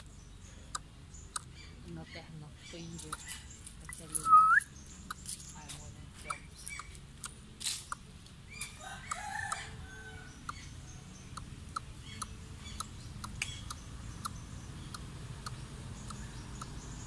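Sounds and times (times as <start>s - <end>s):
birds calling: 0.0s - 17.0s.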